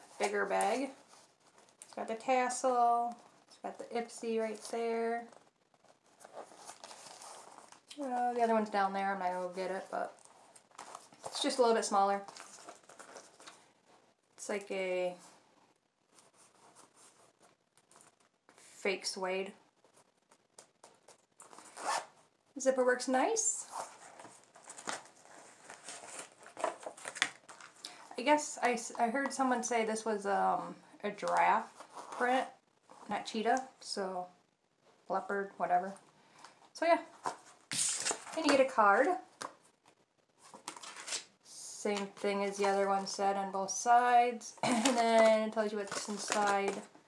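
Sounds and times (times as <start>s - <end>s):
paper card rustling: 4.4s - 7.9s, 9.3s - 13.7s, 23.7s - 28.1s, 37.1s - 39.7s, 40.4s - 41.3s, 44.6s - 47.0s
zipper being pulled: 21.5s - 22.2s.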